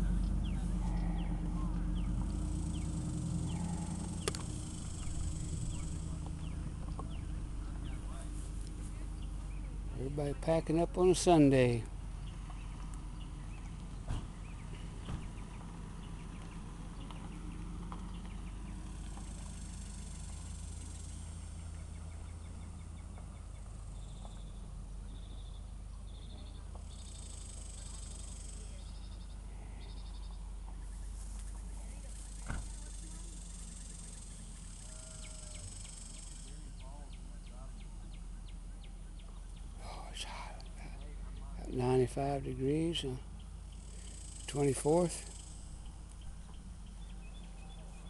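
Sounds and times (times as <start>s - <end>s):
birds chirping: 0.0s - 48.0s
faint distant voices: 0.0s - 48.0s
low steady rumble: 0.0s - 48.0s
steady low hum: 0.0s - 48.0s.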